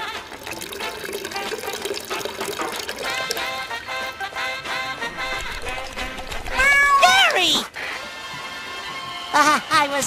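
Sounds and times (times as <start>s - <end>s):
faint background music: 0.0s - 10.0s
cartoon cat-like meow: 6.5s - 7.5s.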